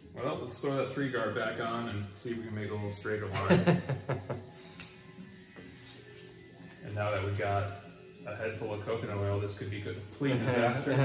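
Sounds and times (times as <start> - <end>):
soft background music: 0.0 - 11.0
person laughing: 3.3 - 4.4.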